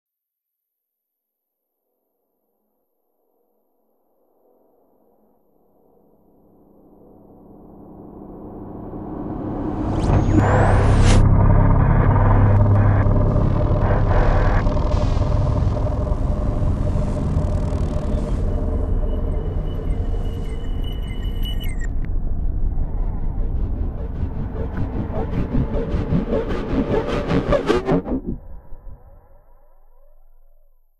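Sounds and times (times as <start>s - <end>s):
high steady whine: 7.2s - 30.6s
low synthesized rumble: 8.3s - 30.1s
rising pitch glide: 8.4s - 30.7s
glitchy shifting tones: 9.1s - 30.7s.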